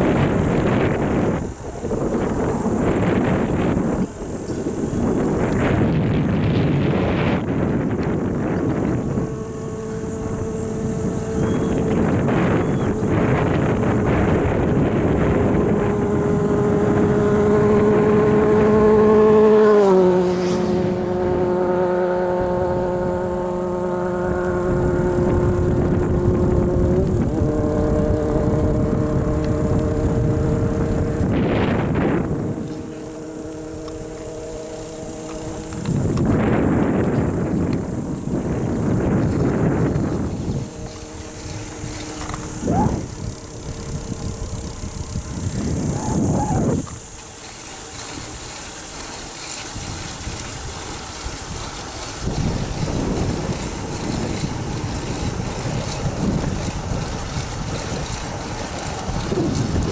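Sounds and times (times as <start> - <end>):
engine hum: 0.0 - 59.9
road and wind noise: 0.0 - 59.9.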